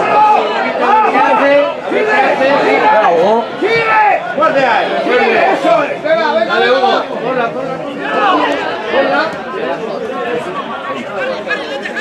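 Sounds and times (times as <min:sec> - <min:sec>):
chatter of voices: 0:00.0 - 0:12.0.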